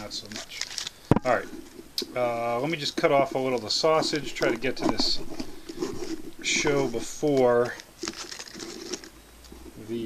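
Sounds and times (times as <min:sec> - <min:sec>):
light scraping and rustling: 0:02.6 - 0:10.0.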